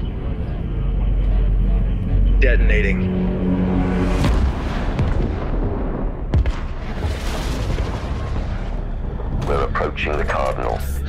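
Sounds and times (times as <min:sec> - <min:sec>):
explosions rumbling: 0:03.0 - 0:10.4
gunfire: 0:05.1 - 0:08.6.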